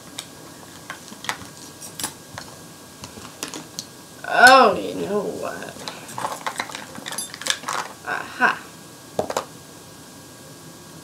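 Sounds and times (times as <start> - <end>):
plastic makeup items clicking: 5.8 - 8.0.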